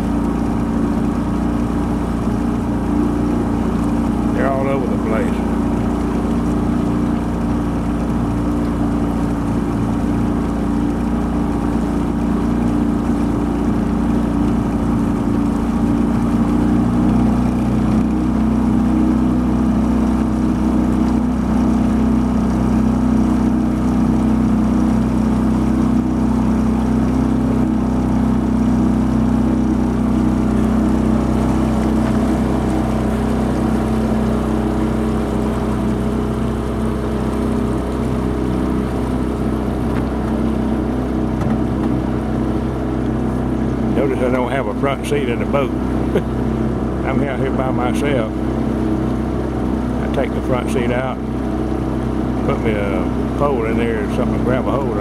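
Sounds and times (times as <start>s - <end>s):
outboard motor running: 0.0s - 55.0s.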